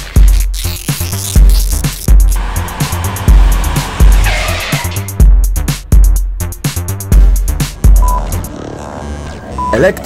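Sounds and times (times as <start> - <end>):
electronic music with drum beat: 0.0 - 2.4, 4.9 - 9.9
tyres skidding: 2.4 - 5.2.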